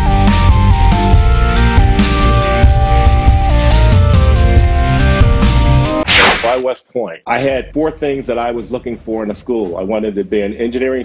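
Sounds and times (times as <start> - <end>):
rock music with guitar and drums: 0.0 - 6.0
whoosh transition effect: 6.0 - 6.6
man speaking: 6.3 - 11.0.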